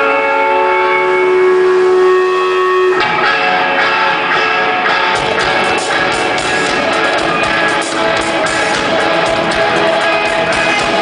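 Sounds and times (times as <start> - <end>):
full rock band playing: 0.0 - 11.0
rock band drone: 0.0 - 11.0.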